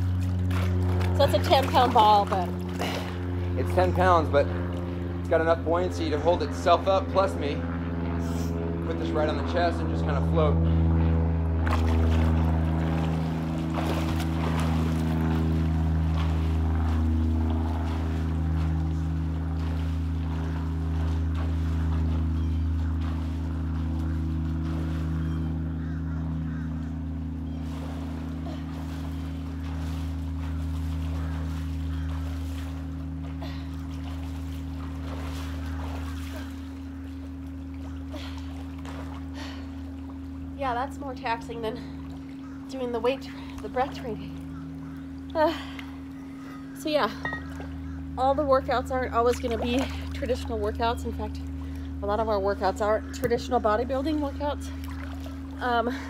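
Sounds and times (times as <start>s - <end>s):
low mechanical hum: 0.0s - 56.0s
water lapping and splashing: 0.0s - 56.0s.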